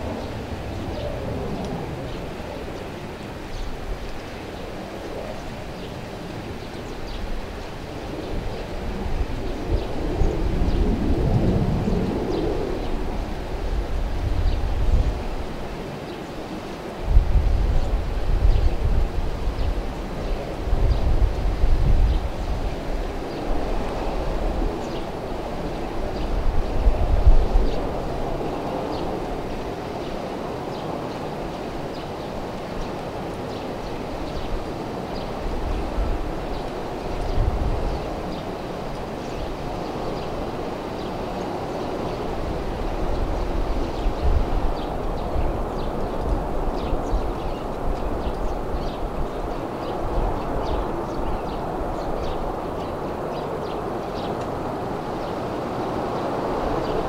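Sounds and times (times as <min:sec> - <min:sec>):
distant jet engine rumble: 0:00.0 - 0:57.0.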